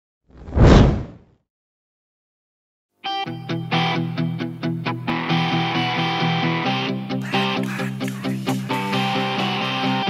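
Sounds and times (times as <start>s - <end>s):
whoosh sound effect: 0.4s - 1.2s.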